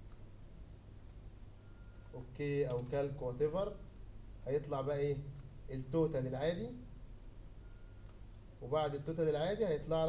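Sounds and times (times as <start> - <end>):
computer mouse clicks: 0.0 - 0.2, 1.0 - 1.2, 1.9 - 2.2, 3.9 - 4.1, 8.0 - 8.4
low steady hum: 0.0 - 10.0.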